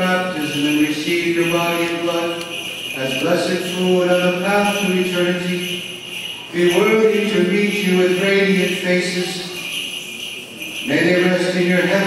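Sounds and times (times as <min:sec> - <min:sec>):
man chanting: 0:00.0 - 0:05.8, 0:06.6 - 0:09.6, 0:10.9 - 0:12.0.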